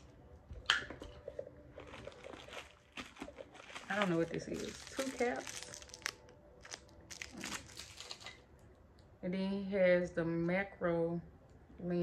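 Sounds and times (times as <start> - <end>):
small crackles: 1.2 - 8.4
plastic packaging crinkling: 1.7 - 8.4.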